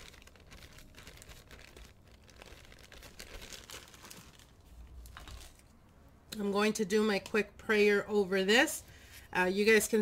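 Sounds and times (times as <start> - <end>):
plastic bag crinkling: 0.0 - 5.7.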